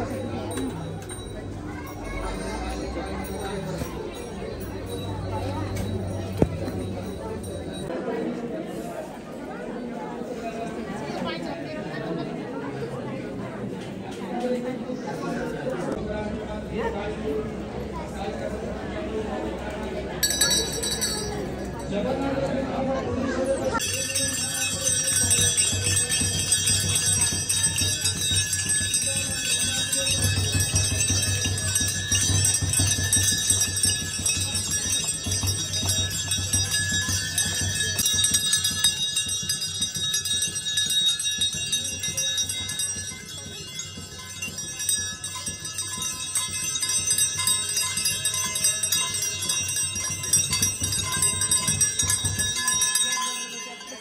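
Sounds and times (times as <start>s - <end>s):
brass bells ringing: 0.0s - 8.4s, 20.2s - 22.4s, 23.7s - 54.0s.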